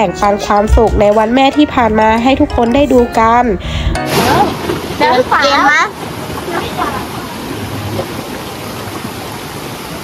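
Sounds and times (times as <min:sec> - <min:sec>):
stream rushing over rocks: 0:04.0 - 0:10.0.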